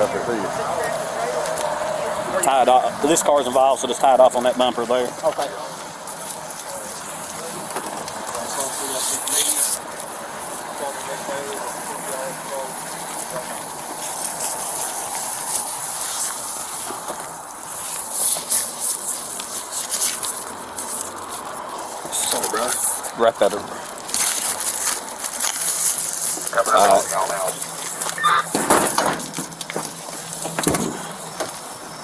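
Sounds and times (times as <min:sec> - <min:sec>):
steady hiss: 0:00.0 - 0:32.0
plastic tape crinkling: 0:12.8 - 0:31.7.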